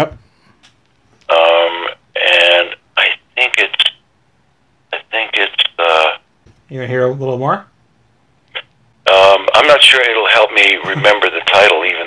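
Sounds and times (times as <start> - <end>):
voice over telephone line: 1.3 - 4.0, 4.9 - 6.2, 8.5 - 12.0.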